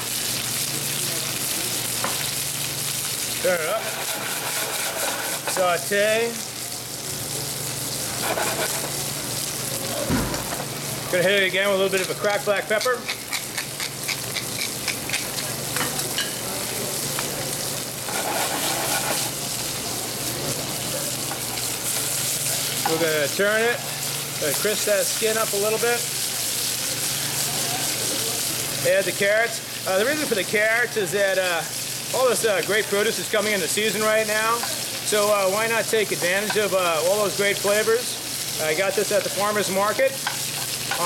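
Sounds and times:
fish fillets sizzling in oil: 0:00.0 - 0:41.0
brief low bump: 0:10.0 - 0:10.7.

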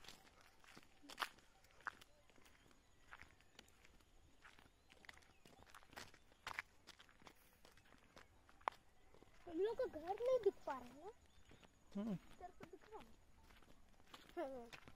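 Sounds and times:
footsteps crunching on dry ground: 0:00.0 - 0:14.9.

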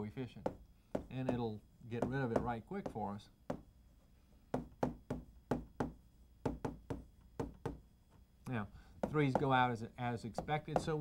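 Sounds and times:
chalk tapping on chalkboard: 0:00.4 - 0:03.6, 0:04.5 - 0:07.8, 0:09.0 - 0:09.6, 0:10.3 - 0:11.0.

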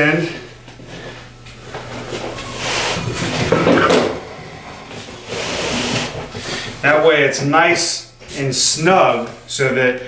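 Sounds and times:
foam and weight plate scraping: 0:01.9 - 0:07.0.

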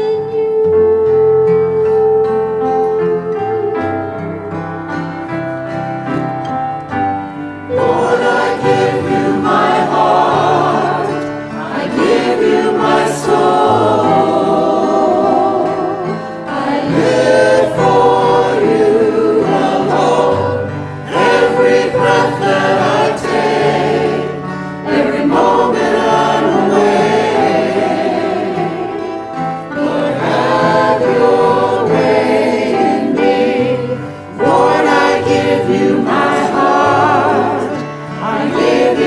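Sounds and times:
choir singing a hymn: 0:00.0 - 0:39.0
piano accompaniment: 0:00.0 - 0:39.0.

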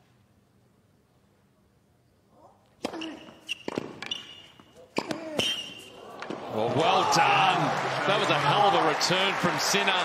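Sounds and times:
tennis racket hitting ball: 0:02.8 - 0:05.6.

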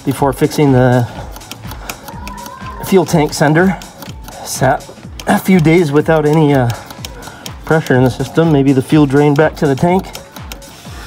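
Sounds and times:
background music with ticking beat: 0:00.0 - 0:11.0.

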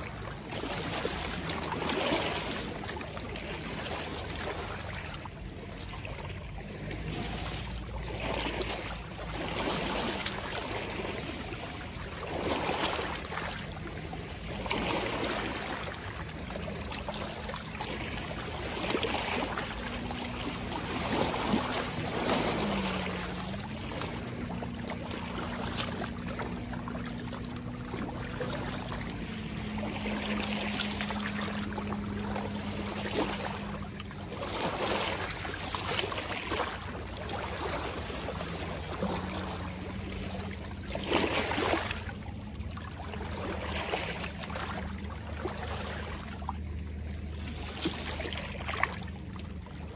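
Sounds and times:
person wading in water: 0:00.0 - 0:49.9
small splashes: 0:00.0 - 0:49.9
steady low hum: 0:00.0 - 0:49.9
waves lapping against rocks: 0:00.0 - 0:49.9.

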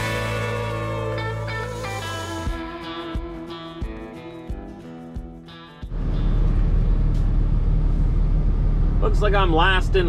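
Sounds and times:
guitar music: 0:00.0 - 0:07.3
road noise: 0:05.9 - 0:10.0
truck engine rumble: 0:05.9 - 0:10.0.

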